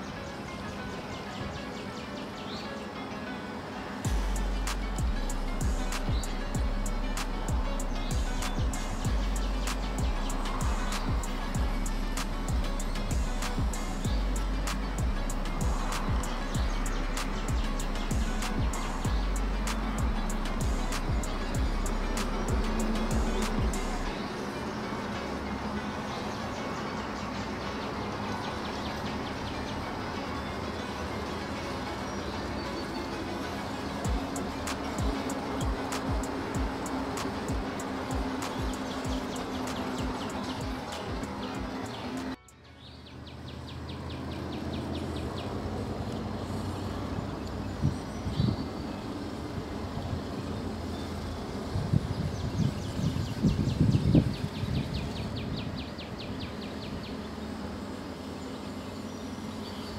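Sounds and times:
background music with steady beat: 0:00.0 - 0:59.9
high chirping of wildlife: 0:00.0 - 0:59.9.

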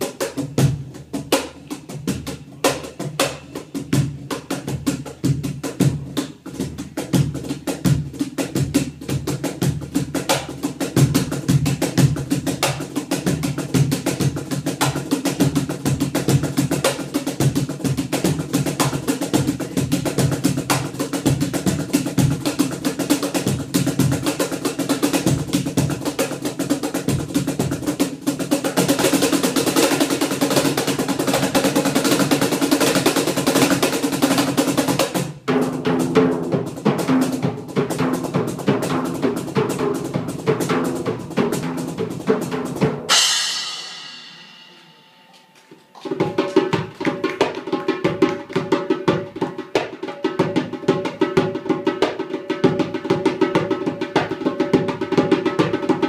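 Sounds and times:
goblet drum played with hands: 0:00.0 - 0:56.0.

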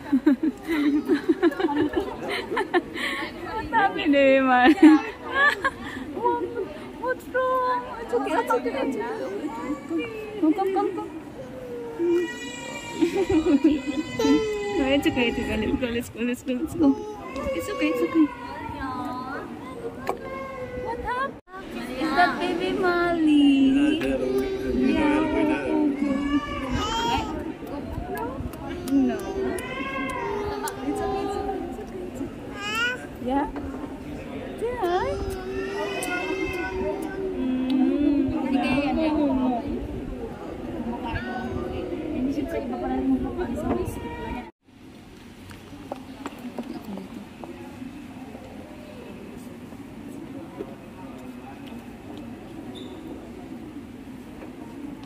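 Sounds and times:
people talking: 0:00.0 - 0:44.5, 0:45.7 - 0:55.0.

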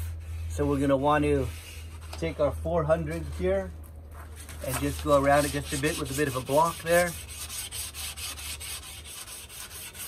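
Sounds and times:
sandpaper rubbing on wood: 0:00.0 - 0:10.0.

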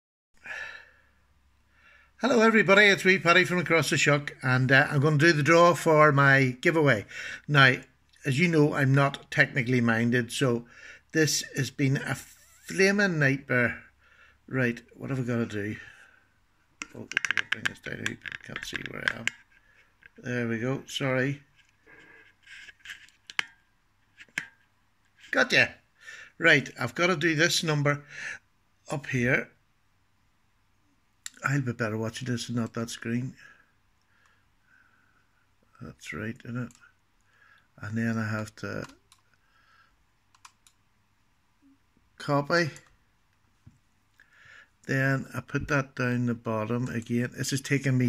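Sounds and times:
faint breath in: 0:00.4 - 0:02.2, 0:07.1 - 0:07.5, 0:10.7 - 0:11.1, 0:14.0 - 0:14.4, 0:39.4 - 0:40.0, 0:44.2 - 0:44.8
man talking: 0:02.2 - 0:13.9, 0:14.5 - 0:16.0, 0:16.9 - 0:19.3, 0:20.2 - 0:21.5, 0:25.3 - 0:25.8, 0:26.4 - 0:29.6, 0:31.3 - 0:33.5, 0:35.8 - 0:36.9, 0:37.8 - 0:39.0, 0:42.2 - 0:42.9, 0:44.8 - 0:48.0
laptop keys clicking: 0:16.8 - 0:19.4, 0:40.3 - 0:40.8.

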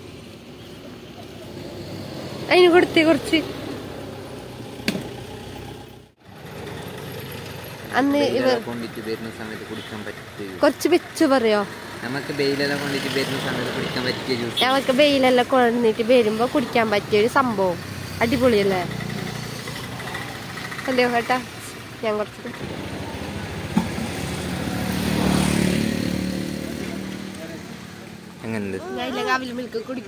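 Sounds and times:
vehicle engine idling: 0:03.9 - 0:25.6.

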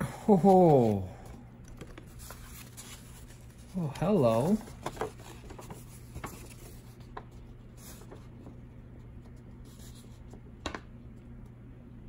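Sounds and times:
low steady hum: 0:00.0 - 0:12.0
paper rustling: 0:00.3 - 0:08.6.

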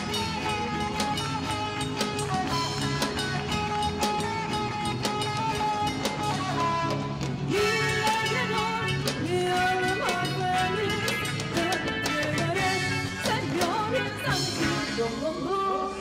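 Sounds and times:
guitars: 0:00.0 - 0:16.0.

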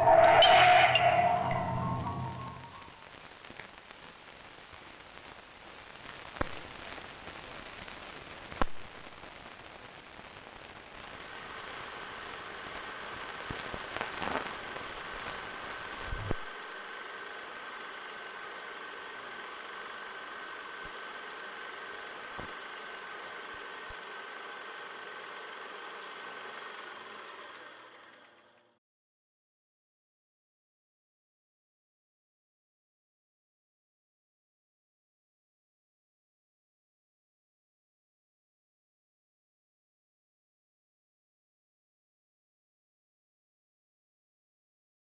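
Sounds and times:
steady high whine: 0:00.0 - 0:28.7
film soundtrack hiss and crackle: 0:00.0 - 0:28.8.

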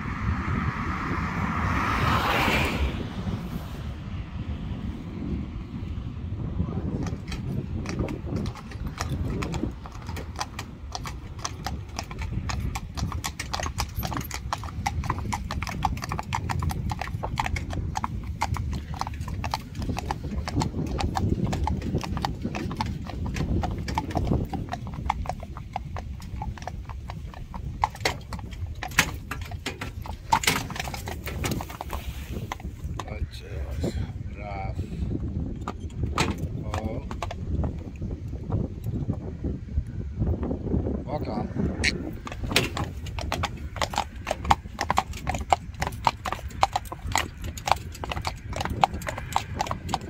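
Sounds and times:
horse hooves trotting on asphalt: 0:03.2 - 0:50.0.

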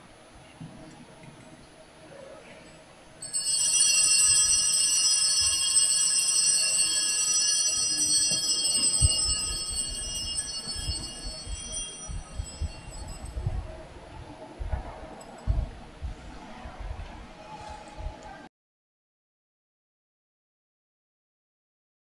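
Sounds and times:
altar bells ringing: 0:03.2 - 0:13.6.

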